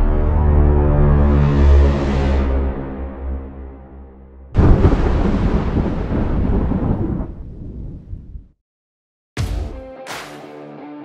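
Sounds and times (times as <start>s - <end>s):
low musical drone: 0.0s - 4.4s
loud rumbling boom hit: 4.6s - 8.5s.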